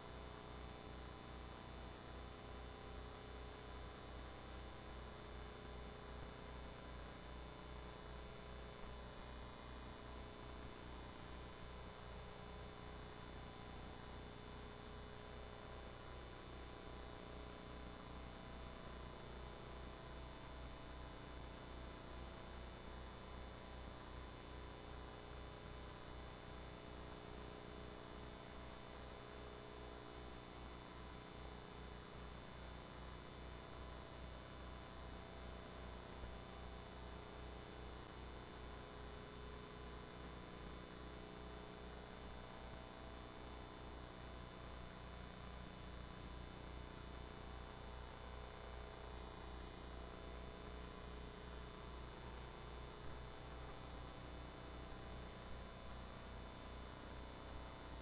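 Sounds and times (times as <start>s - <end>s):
electrical hum with low buzz: 0.0s - 58.0s.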